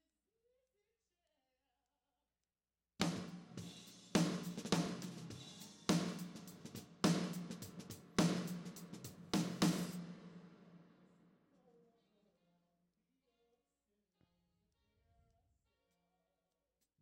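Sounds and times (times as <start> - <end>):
heavy drum hits with reverb: 3.0 - 10.8
hi-hat and cymbal strokes: 3.0 - 10.8.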